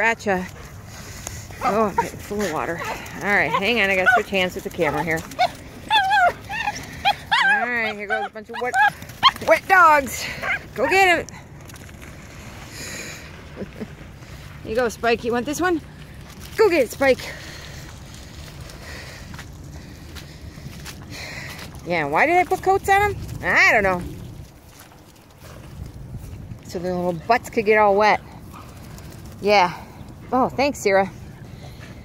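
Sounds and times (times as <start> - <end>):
dog whining: 5.3 - 9.4.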